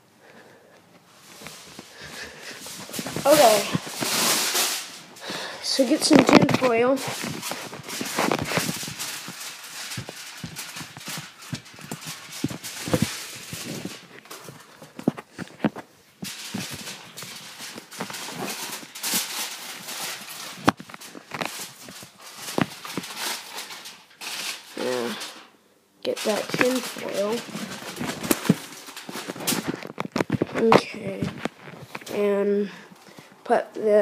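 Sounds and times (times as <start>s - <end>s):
person speaking: 2.0s - 9.1s, 24.7s - 25.4s, 26.0s - 28.4s, 30.5s - 34.0s.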